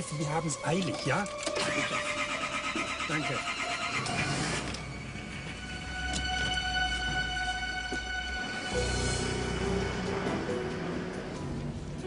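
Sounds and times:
car starter cranking: 1.2 - 5.0.

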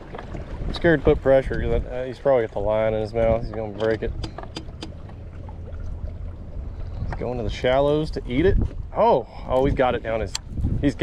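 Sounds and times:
steady low hum: 4.0 - 10.8.

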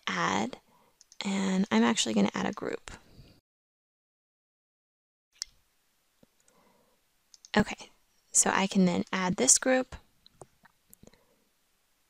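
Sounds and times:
faint computer mouse clicks: 7.3 - 7.6.

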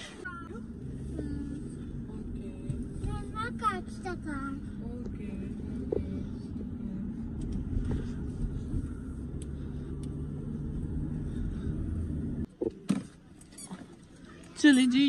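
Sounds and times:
car engine and tyre rumble: 0.0 - 15.0.

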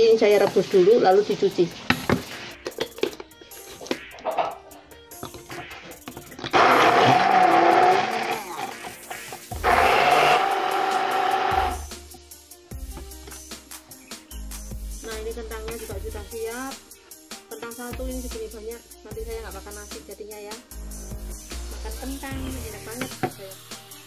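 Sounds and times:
stick blender motor whine: 6.5 - 11.9.

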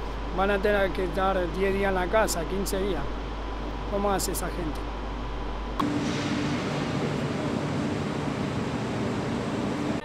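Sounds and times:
train humming at platform: 5.5 - 10.0.

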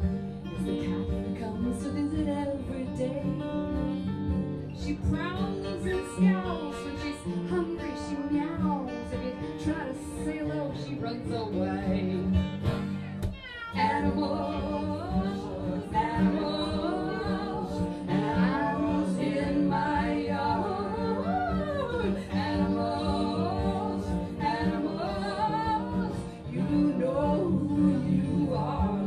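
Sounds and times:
group singing sliding pitch: 13.8 - 29.0.

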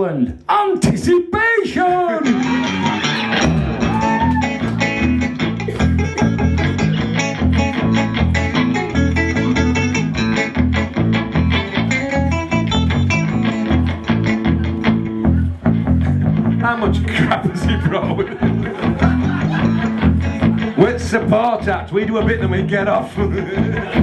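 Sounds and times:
electric guitar playing: 2.1 - 24.0
pulsing bass line: 2.3 - 24.0.

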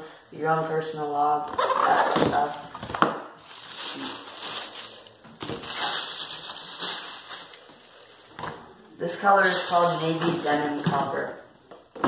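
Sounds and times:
plastic bag crinkling: 1.7 - 8.4, 9.2 - 10.9.

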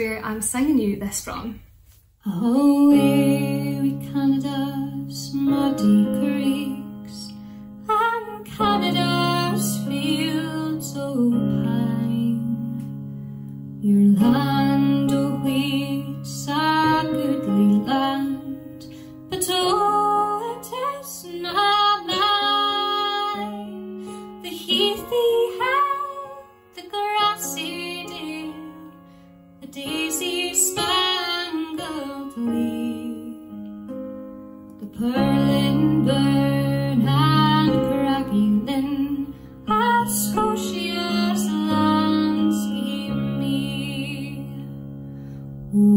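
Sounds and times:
woman singing folk ballad: 2.2 - 13.0, 13.8 - 33.6, 34.8 - 44.8, 45.7 - 45.9.

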